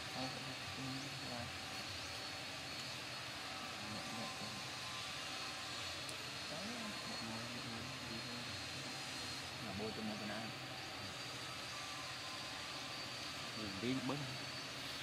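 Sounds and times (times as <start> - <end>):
outdoor background hum: 0.0 - 15.0
faint distant voices: 3.3 - 14.4.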